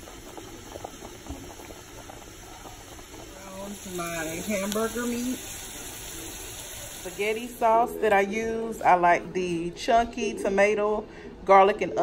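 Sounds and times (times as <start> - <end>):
boiling water bubbling: 0.0 - 8.3.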